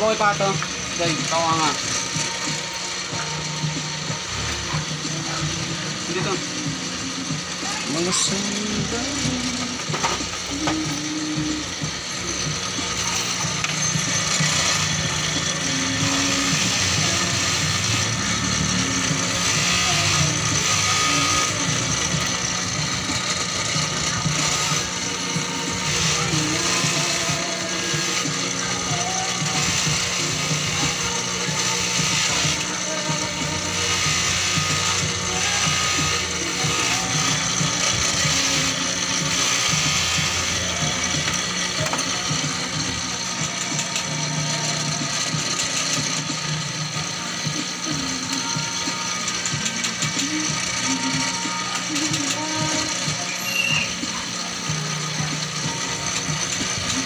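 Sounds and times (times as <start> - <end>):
metal piece polished on wheel: 0.0 - 57.0
polishing motor running: 0.0 - 57.0.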